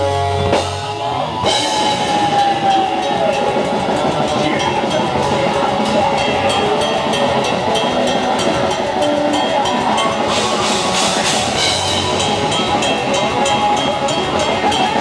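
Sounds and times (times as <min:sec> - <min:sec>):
distorted electric guitar: 0:00.0 - 0:15.0
fast drums and cymbals: 0:00.0 - 0:15.0
heavy metal band playing: 0:00.0 - 0:15.0.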